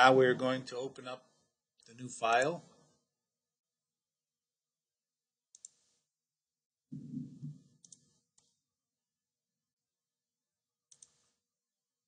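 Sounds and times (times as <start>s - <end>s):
mouse clicking: 5.5s - 6.0s, 7.8s - 8.6s, 10.9s - 11.3s
muffled low noise: 6.9s - 7.6s.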